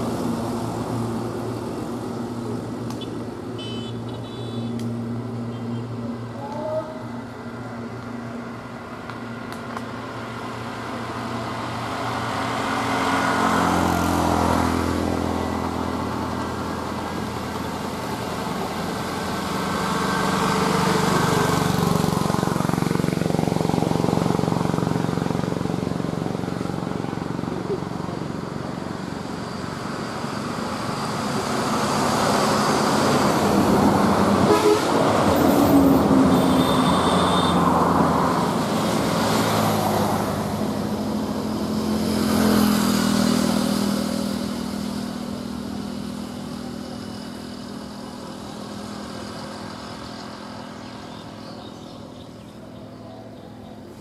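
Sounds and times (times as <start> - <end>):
vehicles driving past: 0.0 - 54.0
horn toots: 3.0 - 4.8, 34.4 - 35.4, 36.2 - 37.8.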